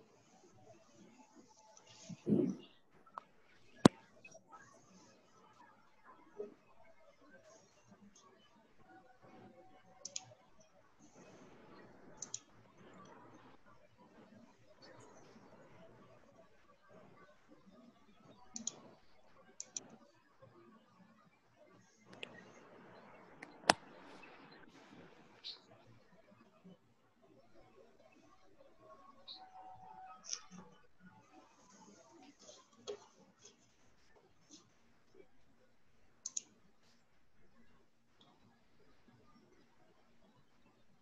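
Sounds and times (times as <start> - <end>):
faint room noise: 0.0 - 41.0
sharp clicks: 12.2 - 12.5, 36.2 - 36.5.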